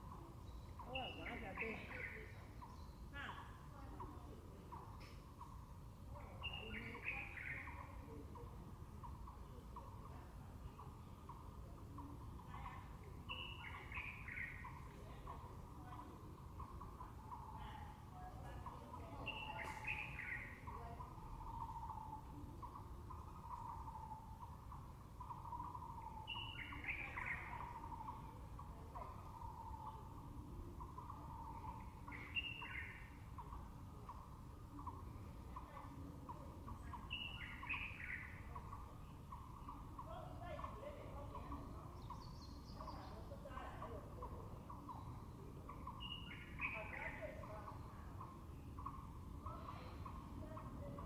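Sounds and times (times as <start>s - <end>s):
bird calling: 0.0s - 5.6s, 9.0s - 51.0s.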